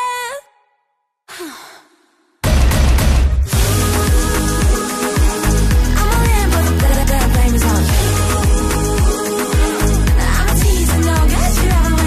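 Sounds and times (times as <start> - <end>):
woman sighing: 1.3 - 2.3
electronic pop song: 2.4 - 12.0.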